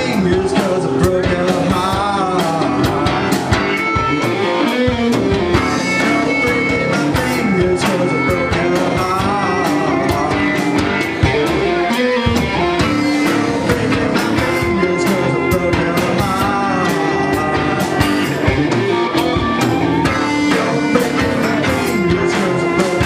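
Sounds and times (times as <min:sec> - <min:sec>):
drum kit steady beat: 0:00.0 - 0:23.0
electric bass: 0:00.0 - 0:23.0
electric guitars: 0:00.0 - 0:23.0.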